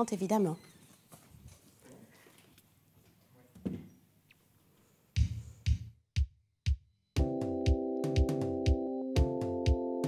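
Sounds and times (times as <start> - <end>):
electronic kick drum beats: 5.2 - 9.8.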